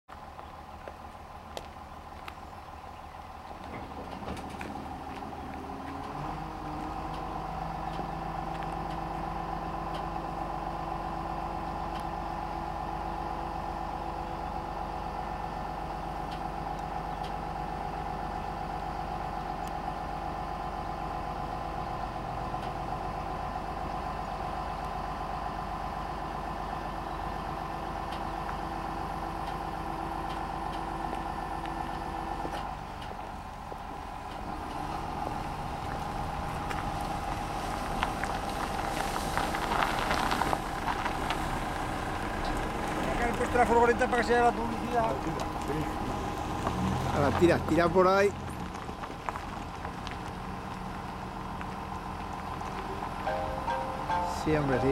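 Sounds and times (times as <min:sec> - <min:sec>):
tractor engine running: 0:00.1 - 0:54.9.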